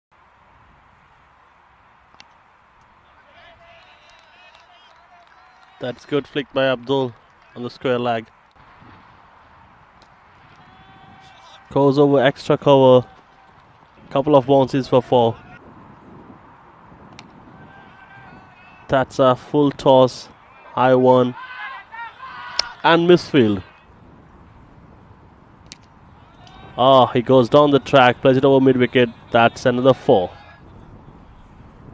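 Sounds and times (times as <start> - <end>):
distant shouts: 2.9 - 7.7, 9.4 - 15.7, 17.3 - 24.0, 26.0 - 31.4.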